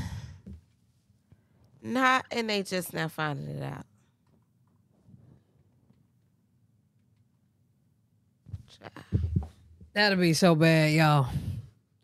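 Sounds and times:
speech: 0:01.9 - 0:03.8, 0:10.0 - 0:11.6.

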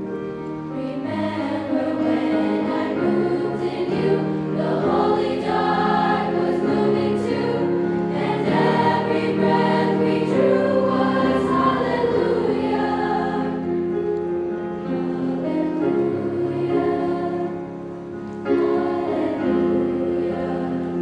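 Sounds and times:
girls' choir singing: 0:00.7 - 0:14.2, 0:14.8 - 0:21.0.

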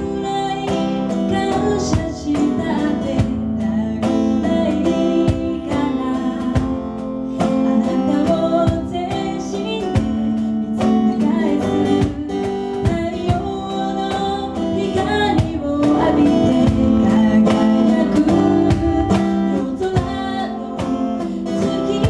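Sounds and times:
cajon strikes: 0:00.0 - 0:22.0
strummed acoustic guitar: 0:00.0 - 0:22.0
woman singing: 0:00.0 - 0:22.0.

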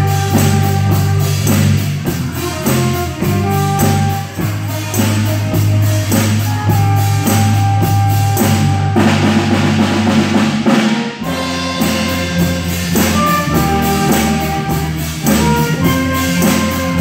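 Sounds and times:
bass line: 0:00.0 - 0:17.0
cymbals: 0:00.0 - 0:17.0
held horn notes: 0:00.0 - 0:17.0
jazz band playing: 0:00.0 - 0:17.0.

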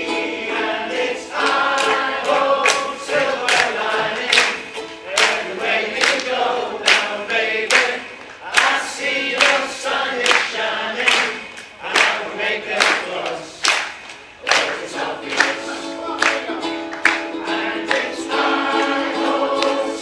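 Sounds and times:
group singing in unison: 0:00.0 - 0:20.0
strummed ukuleles: 0:00.0 - 0:20.0.

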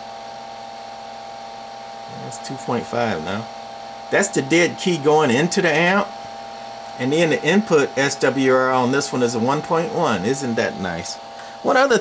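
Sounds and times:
cooling fan whirring: 0:00.0 - 0:12.0
faint electrical hum: 0:00.0 - 0:12.0.

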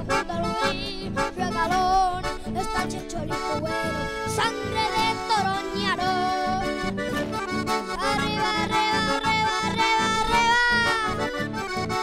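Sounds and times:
accordion melody: 0:00.0 - 0:12.0
acoustic guitar rhythm: 0:00.0 - 0:12.0.

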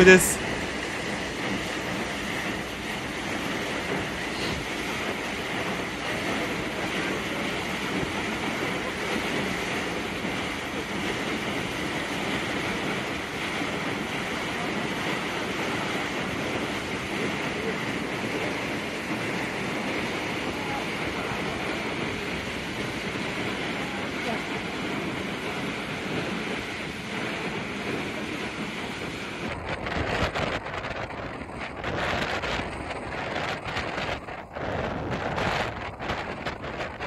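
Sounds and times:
wind on microphone: 0:00.0 - 0:37.0.

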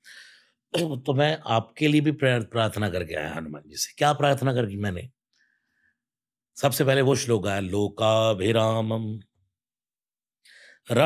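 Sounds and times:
breath in: 0:00.0 - 0:00.6, 0:10.4 - 0:10.8.

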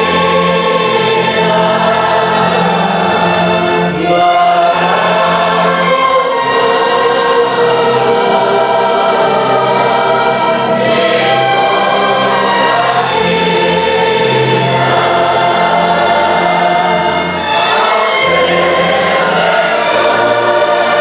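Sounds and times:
choir singing a slow hymn: 0:00.0 - 0:21.0.

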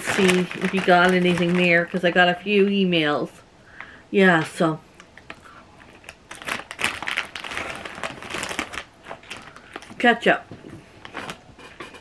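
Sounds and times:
chip bag crinkling: 0:00.0 - 0:02.4, 0:05.0 - 0:10.3.

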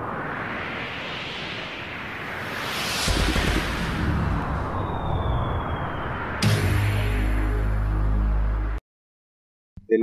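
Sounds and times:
rushing whoosh: 0:00.0 - 0:07.4
deep rumble: 0:03.0 - 0:07.3.

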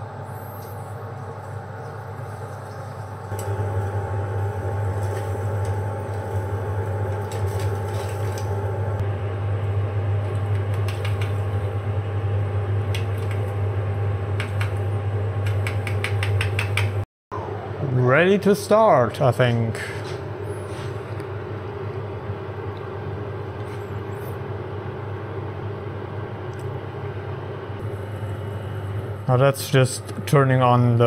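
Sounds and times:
extraction fan humming: 0:00.0 - 0:31.0.

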